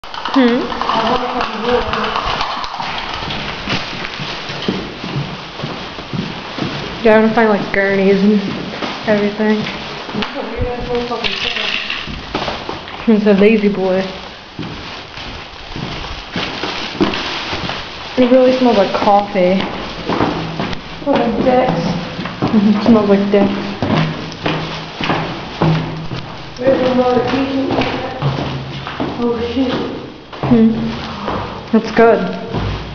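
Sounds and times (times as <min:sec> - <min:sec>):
background noise: 0:00.0 - 0:32.9
indistinct voices: 0:00.2 - 0:03.6, 0:21.0 - 0:24.0, 0:26.6 - 0:32.6
footsteps on a hard floor: 0:00.2 - 0:32.9
sharp knocks: 0:23.8 - 0:29.1.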